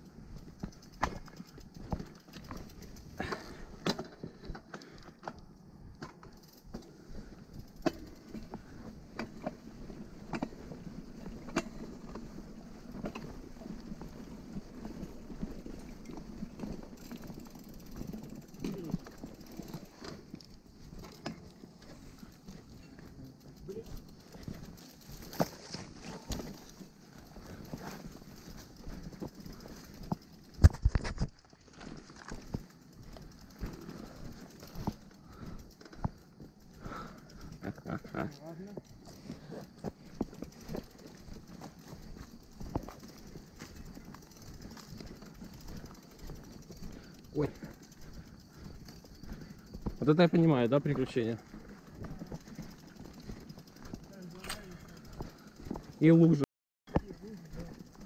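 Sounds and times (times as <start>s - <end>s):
clicks from bike frame and chain: 0.0s - 58.0s
mountain bike rattling and knocking: 0.0s - 58.0s.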